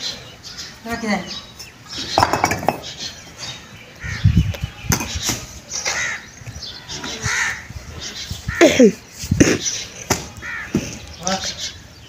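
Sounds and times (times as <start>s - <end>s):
crow cawing: 7.1s - 7.7s, 10.3s - 10.8s.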